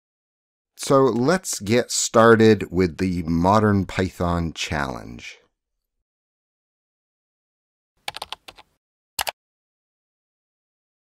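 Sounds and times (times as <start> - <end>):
sharp typing-like clicks: 8.1 - 9.4.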